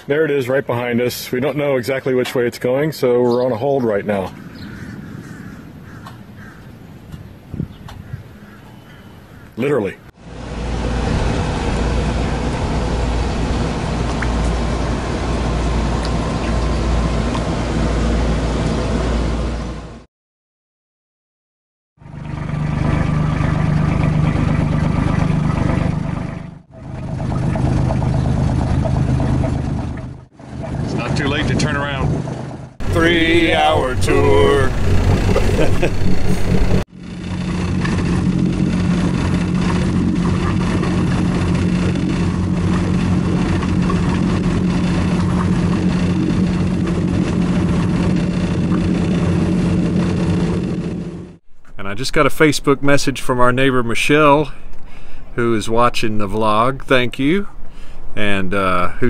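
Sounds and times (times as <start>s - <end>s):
outdoor background noise: 0.0s - 20.0s
bird calls: 3.2s - 10.1s
outboard motor humming: 10.1s - 20.1s, 22.0s - 51.4s
person speaking: 32.8s - 36.5s.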